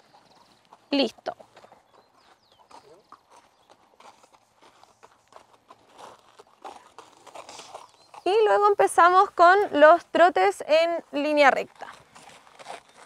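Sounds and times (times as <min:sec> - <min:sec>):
faint hoofbeats on dirt road: 0:00.0 - 0:13.0.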